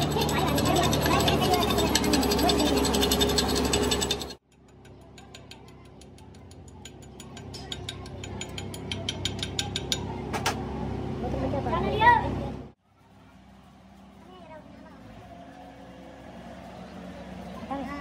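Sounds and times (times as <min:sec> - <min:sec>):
lathe gears ticking: 0:00.0 - 0:09.9.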